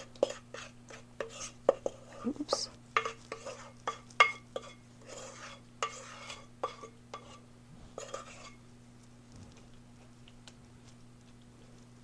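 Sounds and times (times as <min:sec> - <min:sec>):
spatula scraping ceramic bowl: 0:00.0 - 0:08.6.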